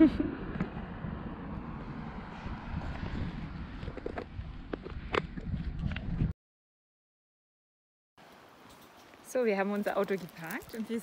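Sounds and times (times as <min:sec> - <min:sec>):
wind on microphone: 0:00.0 - 0:06.4.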